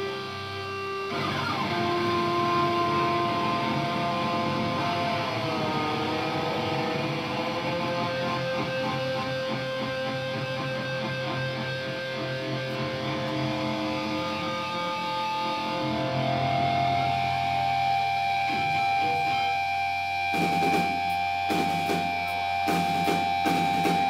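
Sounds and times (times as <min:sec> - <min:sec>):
electric guitar notes ringing: 0:00.0 - 0:24.0.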